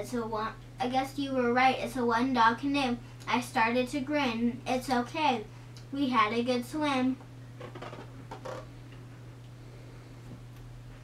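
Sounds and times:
girl speaking: 0.0s - 7.2s
steady low hum: 0.0s - 11.0s.

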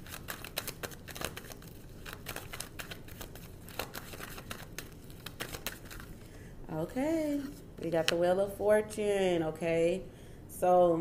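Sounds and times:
cards being shuffled: 0.0s - 6.2s.

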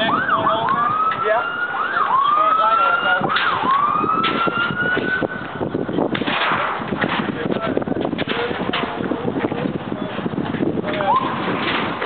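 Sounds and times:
emergency vehicle siren: 0.0s - 5.8s, 11.0s - 11.6s.

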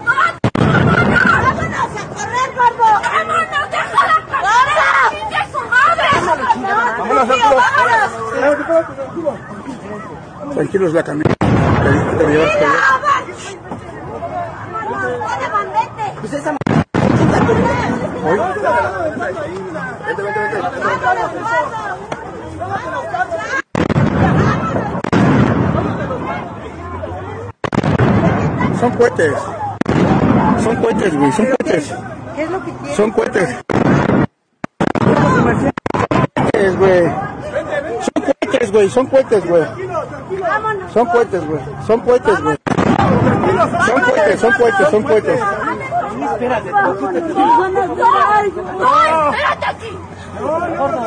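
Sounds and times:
people shouting: 0.0s - 10.5s, 12.2s - 13.4s, 42.3s - 51.0s
crowd chatter: 0.0s - 33.7s, 34.5s - 51.0s
rumbling noise: 29.7s - 31.0s, 42.6s - 43.9s
skyrocket bang: 33.7s - 36.2s, 42.7s - 43.5s.

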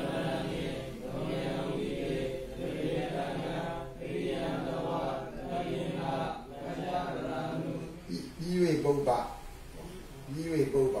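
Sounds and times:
person chanting: 0.0s - 8.4s.

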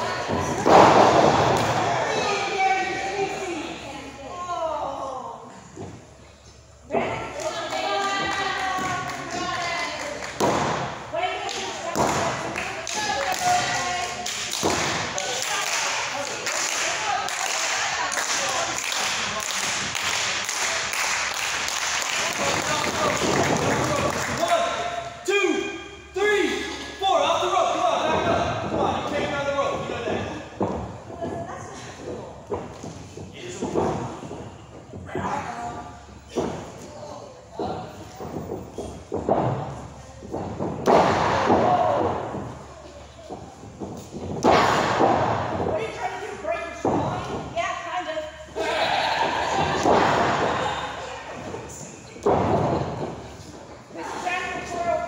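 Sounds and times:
voices shouting in a large hall: 48.3s - 51.2s.

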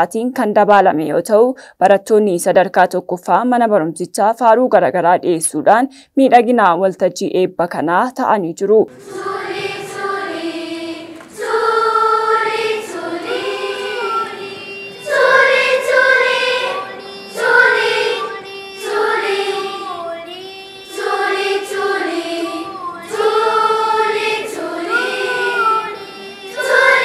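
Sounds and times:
children's choir singing: 8.9s - 27.0s.

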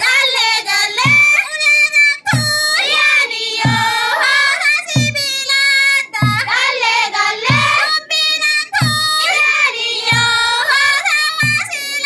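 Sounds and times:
group singing chanted melody: 0.0s - 1.4s, 2.3s - 12.0s
deep drum thump: 3.6s - 4.0s, 5.0s - 5.3s, 6.2s - 6.6s, 7.5s - 7.9s, 8.8s - 9.2s.

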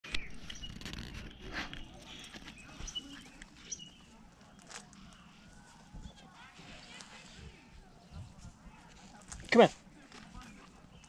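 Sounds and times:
rustling on gravelly ground: 0.1s - 11.0s.

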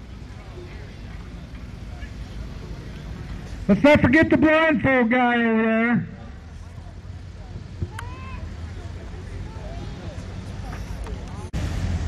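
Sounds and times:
distant voices: 0.0s - 12.0s
engine idling: 0.0s - 12.0s.

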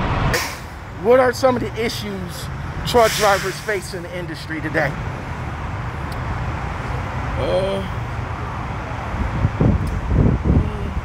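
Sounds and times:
diesel truck engines rumbling: 0.0s - 11.0s.

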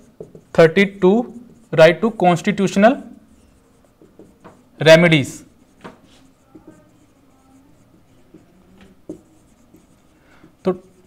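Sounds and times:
marker squeaking on whiteboard: 0.0s - 11.0s.

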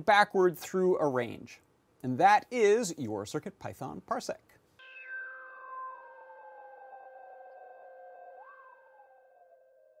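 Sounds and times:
synthesized held tones: 4.8s - 10.0s.

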